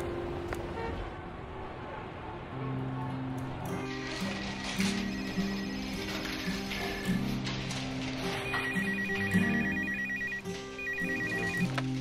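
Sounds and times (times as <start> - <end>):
background music: 0.0 - 12.0
telephone ringing: 3.9 - 6.3, 8.2 - 11.8.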